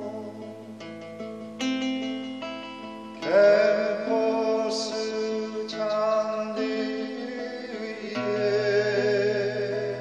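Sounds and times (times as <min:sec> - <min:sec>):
classical guitar chords ringing: 0:00.0 - 0:10.0.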